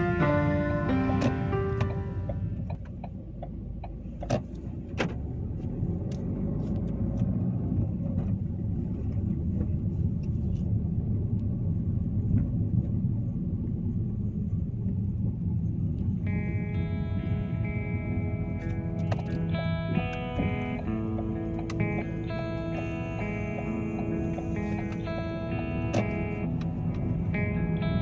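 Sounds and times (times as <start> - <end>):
car road noise rumble: 0.0 - 28.0.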